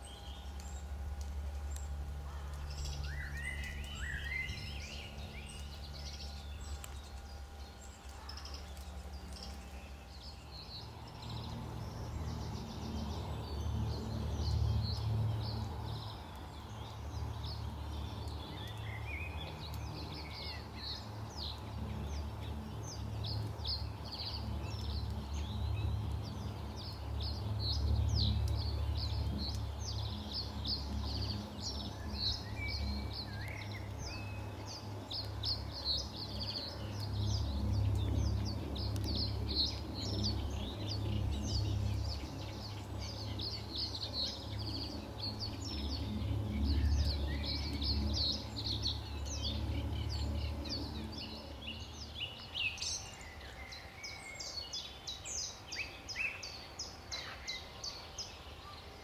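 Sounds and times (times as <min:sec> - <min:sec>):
low steady rumble: 0:00.0 - 0:53.3
birds chirping and trilling: 0:00.0 - 0:59.0.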